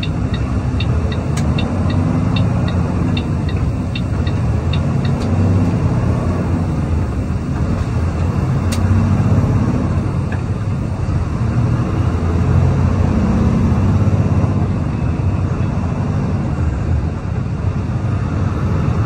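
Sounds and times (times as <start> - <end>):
light ticking: 0.0 - 5.4
truck diesel engine shifting gears: 0.0 - 19.0.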